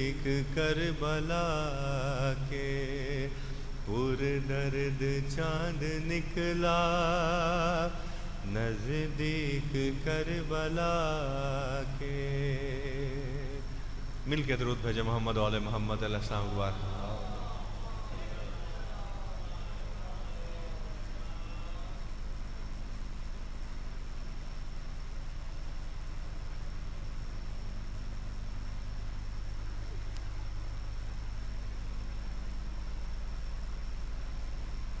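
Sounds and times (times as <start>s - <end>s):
electrical hum with hiss: 0.0s - 35.0s
thin high whine: 0.0s - 35.0s
faint voices: 16.3s - 22.2s.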